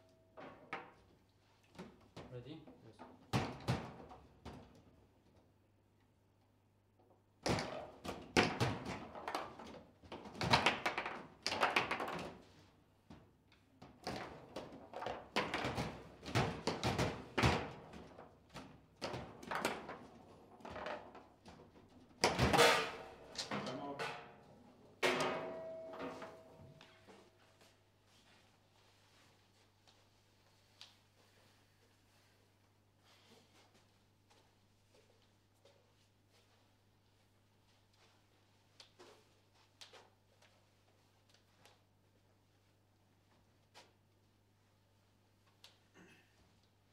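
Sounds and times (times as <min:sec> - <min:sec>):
foosball knocks and clacks: 0:07.5 - 0:12.5, 0:13.8 - 0:24.4
ball banging off table walls: 0:25.0 - 0:26.8.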